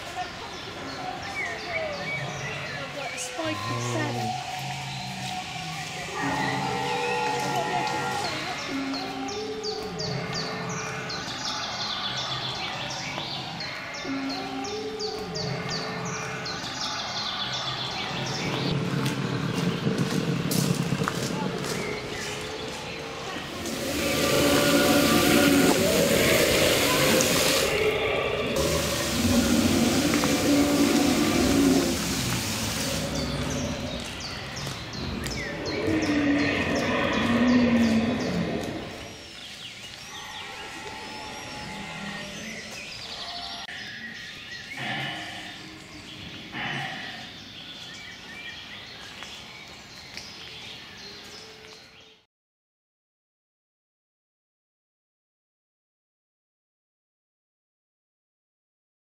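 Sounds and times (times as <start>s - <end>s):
dinosaur figures growling: 23.4s - 34.2s, 34.9s - 39.0s, 44.8s - 45.8s, 46.5s - 47.4s
rushing spray of water: 23.5s - 34.1s.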